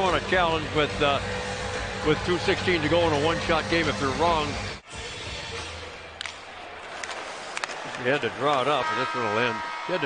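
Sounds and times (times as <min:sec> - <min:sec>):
hockey sticks and puck clacking: 0:06.2 - 0:09.5.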